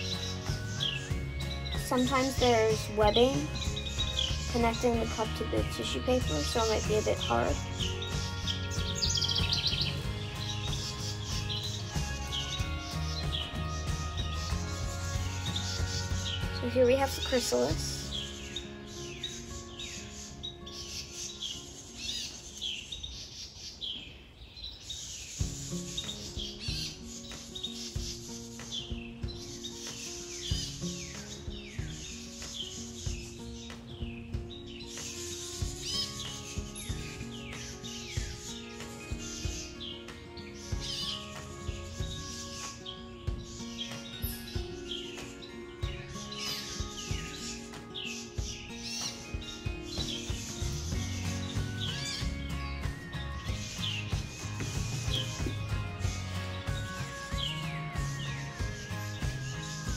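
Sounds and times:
birds chirping: 0.0 - 59.9
soft music with held notes: 0.0 - 59.9.

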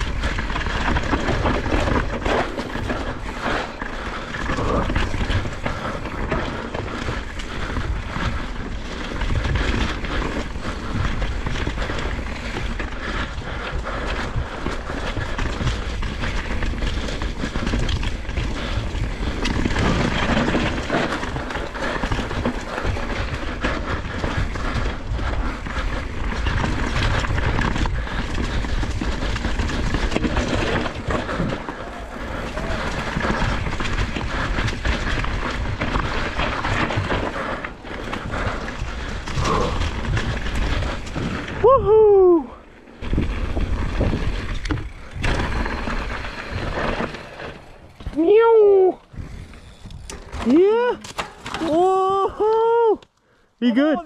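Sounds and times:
bike rattling and knocking: 0.0 - 52.8
bike tyres rolling on dirt: 0.0 - 54.0.

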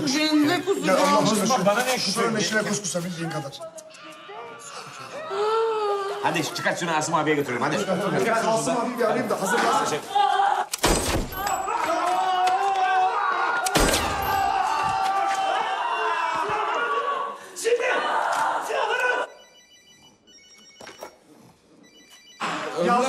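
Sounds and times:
loud excited voices: 0.0 - 10.8, 11.4 - 19.4
telephone ringing: 19.2 - 23.0.

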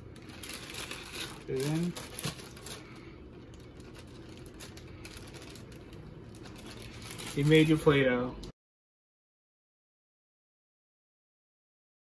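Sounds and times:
plastic bag crinkling: 0.0 - 8.5
low room hum: 0.0 - 8.6.

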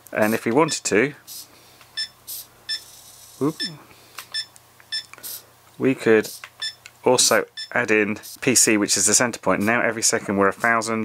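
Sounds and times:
short electronic beeps: 2.0 - 5.1, 6.6 - 6.8, 7.5 - 7.8
small servo whirring: 2.3 - 3.6.

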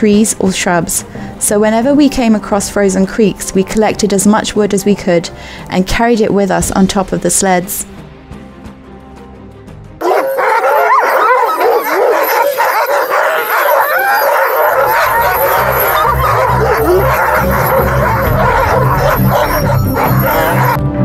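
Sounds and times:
background music: 0.0 - 21.0
sled dogs barking and howling: 10.0 - 20.9.

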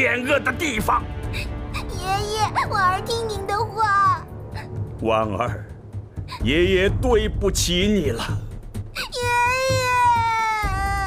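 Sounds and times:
girl crying out: 9.0 - 11.0.

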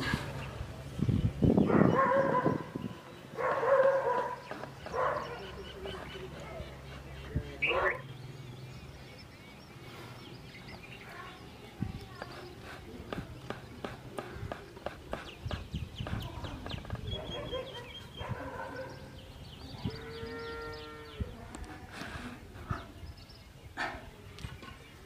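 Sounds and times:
dog barking: 1.7 - 2.8, 3.4 - 5.5, 7.6 - 8.0, 17.2 - 19.0.

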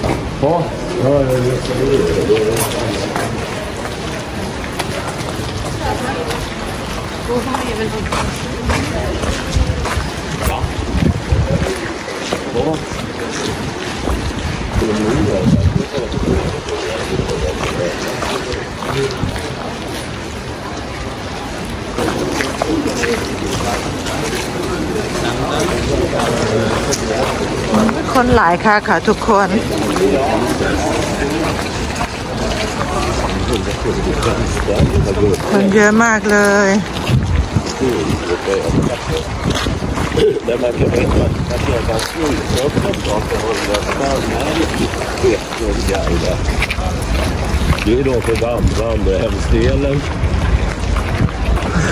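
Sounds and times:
voices in background: 0.0 - 51.9
wind buffeting microphone: 0.0 - 51.9
woman speaking: 7.3 - 8.4, 28.0 - 29.6, 35.5 - 36.9.

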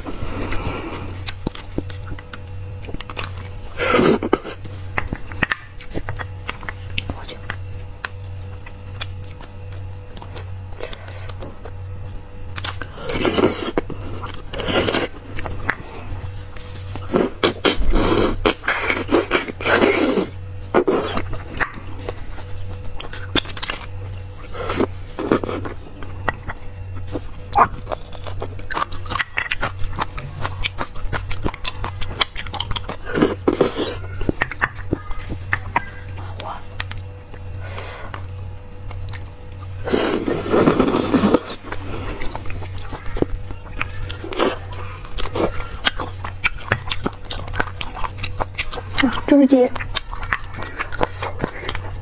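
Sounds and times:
person sucking and chewing: 0.0 - 52.0
steady low hum: 0.0 - 52.0.

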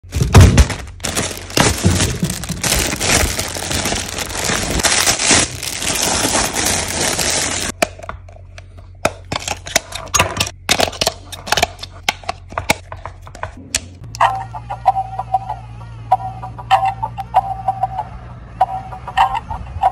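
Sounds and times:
plastic bag crinkling: 0.0 - 7.8.

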